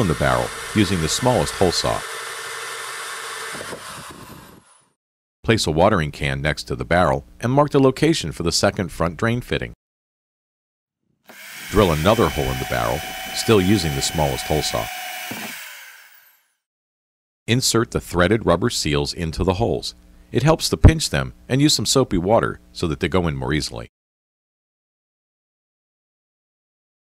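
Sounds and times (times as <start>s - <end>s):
electric drill whirring: 0.0s - 5.0s, 11.3s - 16.5s.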